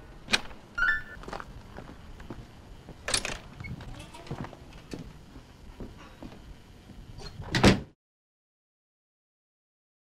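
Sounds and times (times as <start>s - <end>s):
door shutting thud: 7.2s - 7.9s.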